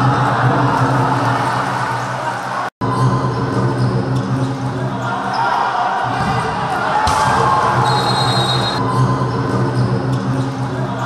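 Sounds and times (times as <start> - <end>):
background music: 0.0 - 11.0
crowd noise: 0.0 - 11.0.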